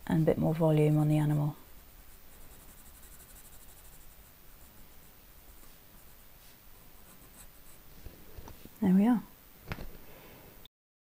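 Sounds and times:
pencil scratching on paper: 0.8 - 8.0.

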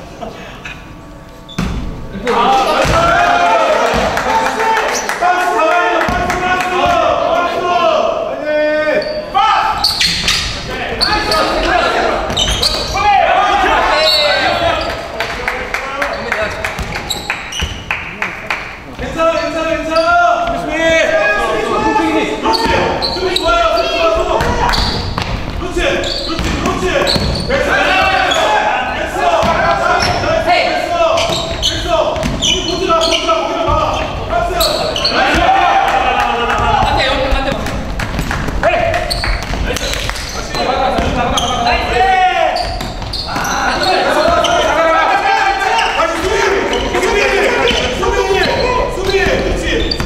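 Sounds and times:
sneakers squeaking: 0.8 - 3.2, 8.8 - 15.1, 16.0 - 50.0
players calling out: 2.1 - 50.0
basketball bouncing: 16.7 - 17.8, 24.4 - 25.6, 26.3 - 28.2, 29.4 - 30.3, 31.2 - 32.6, 36.5 - 41.5, 42.6 - 43.6.

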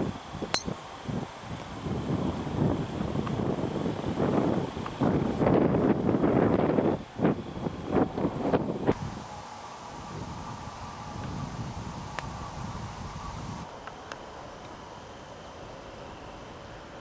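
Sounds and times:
wind buffeting microphone: 0.0 - 13.7.

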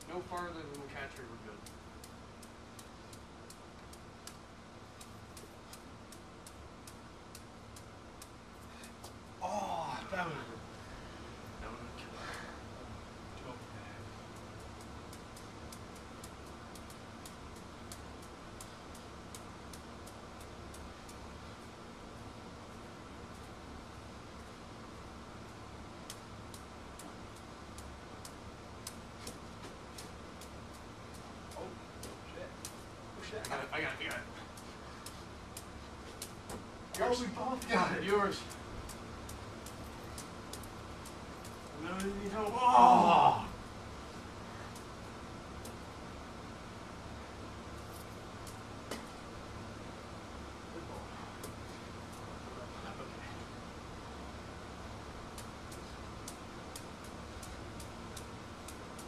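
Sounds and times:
sharp high-pitched clicks: 0.0 - 9.2, 14.2 - 21.7, 25.4 - 42.7, 44.7 - 45.9, 47.8 - 49.1, 55.0 - 59.0
low room noise: 0.0 - 59.0
low steady hum: 0.0 - 59.0
man talking: 9.4 - 10.6, 33.2 - 34.4, 37.0 - 38.6, 41.7 - 43.5.

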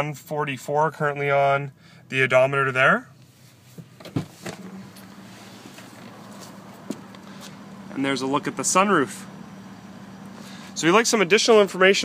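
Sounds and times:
low hum in car cabin: 0.0 - 12.0.

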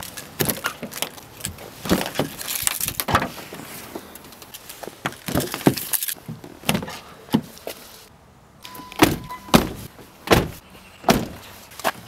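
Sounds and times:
car doors shutting: 8.6 - 11.5.

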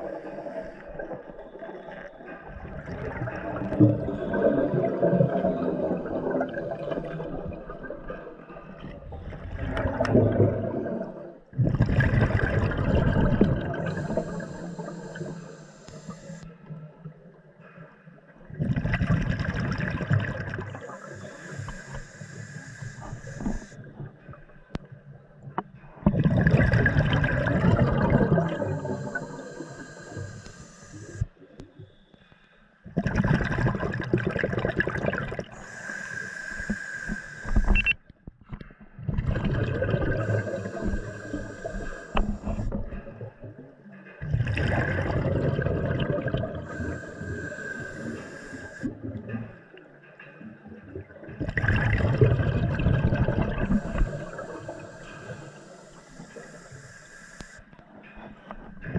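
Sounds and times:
exhaled bubbles rushing: 0.0 - 15.4, 18.5 - 21.0, 26.0 - 30.3, 32.9 - 35.6, 39.0 - 48.2, 50.6 - 55.4
hissing regulator inhale: 13.6 - 16.5, 20.7 - 23.9, 27.5 - 31.3, 35.4 - 38.0, 40.0 - 43.0, 46.2 - 49.2, 53.2 - 57.8.

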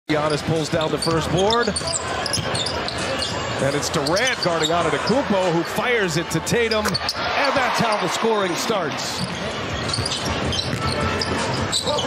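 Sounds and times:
crowd din: 0.1 - 12.0.

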